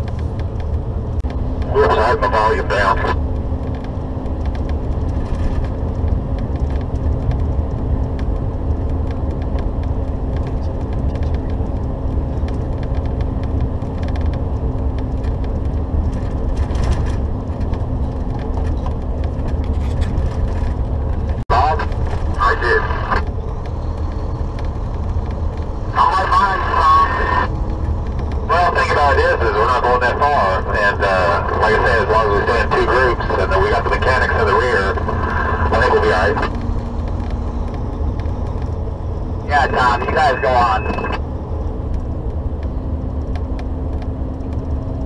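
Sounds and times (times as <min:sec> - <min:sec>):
truck engine and tyres droning: 0:00.0 - 0:45.0
cb radio chatter: 0:01.7 - 0:03.2, 0:21.5 - 0:23.2, 0:25.9 - 0:27.5, 0:28.5 - 0:36.5, 0:39.4 - 0:41.2.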